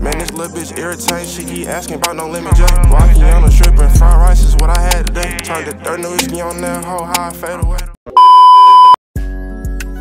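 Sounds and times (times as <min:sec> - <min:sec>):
music with deep bass beat: 0:00.0 - 0:08.0
high-pitched test tone beep: 0:08.2 - 0:09.0.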